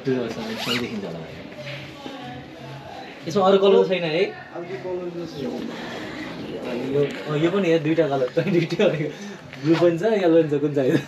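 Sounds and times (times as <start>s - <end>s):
jacket zipper pulled open: 0.5s - 1.0s.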